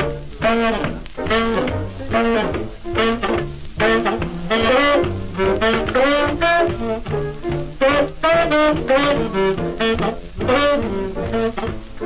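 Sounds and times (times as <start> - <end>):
horns over swing rhythm on record: 0.0 - 12.0.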